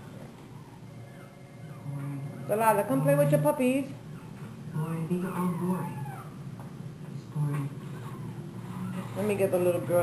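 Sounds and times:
puppy whining: 0:00.3 - 0:06.6, 0:07.7 - 0:10.0.

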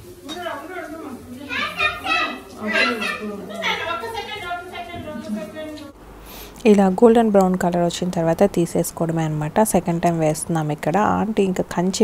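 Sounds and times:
children talking and calling out: 0:00.2 - 0:06.0.

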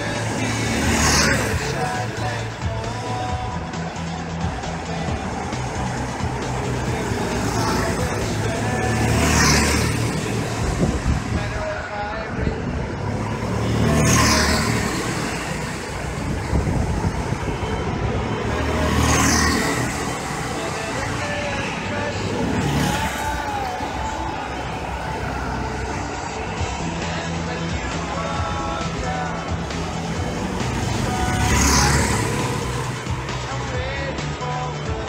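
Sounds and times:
go-kart engines buzzing: 0:00.0 - 0:35.0.

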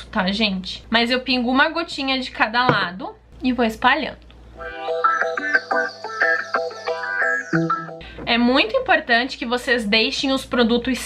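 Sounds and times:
plucked guitar notes: 0:07.4 - 0:08.0.

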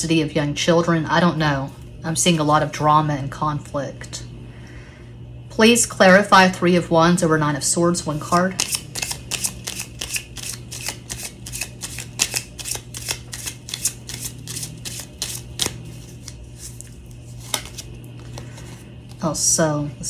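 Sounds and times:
cards being shuffled by hand: 0:08.2 - 0:19.4.

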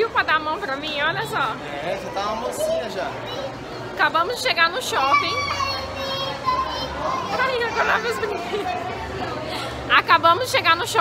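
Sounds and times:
hum of busy public space: 0:00.0 - 0:11.0
indistinct voices chattering: 0:00.0 - 0:11.0.

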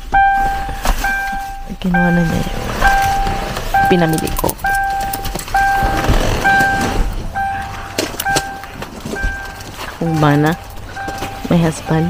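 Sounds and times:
car door warning chime: 0:00.0 - 0:12.0.

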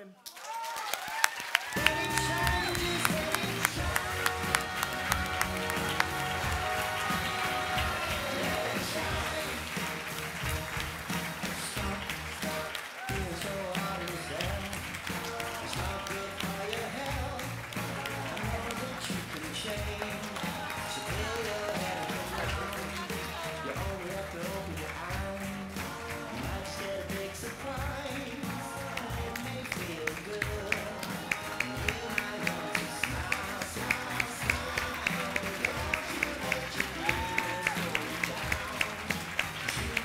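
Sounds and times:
music with steady beat: 0:01.8 - 0:40.0.

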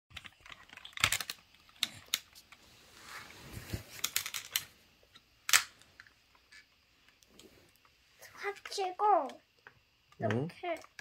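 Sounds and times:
plastic toy clicks: 0:00.1 - 0:02.4, 0:10.1 - 0:11.0.

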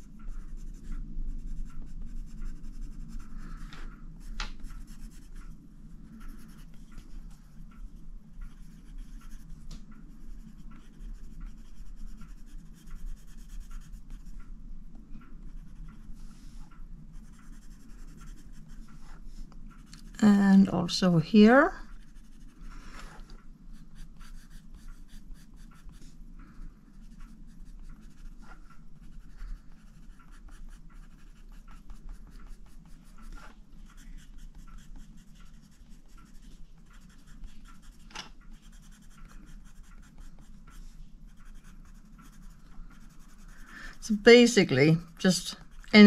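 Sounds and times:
pencil scratching on paper: 0:00.0 - 0:09.6, 0:10.2 - 0:14.4, 0:15.4 - 0:20.3, 0:21.4 - 0:26.2, 0:26.9 - 0:46.0.

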